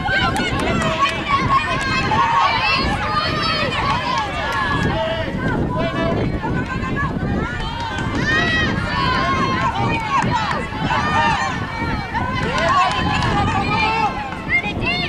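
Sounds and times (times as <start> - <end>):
players shouting: 0.0 - 15.0.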